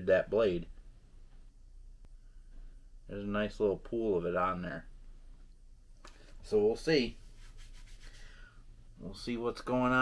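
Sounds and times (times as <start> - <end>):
cloth rubbing and rustling: 5.9 - 8.4.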